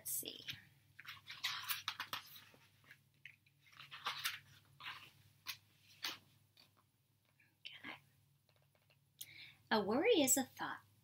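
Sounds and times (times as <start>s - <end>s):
woman breathing softly: 9.2s - 9.7s.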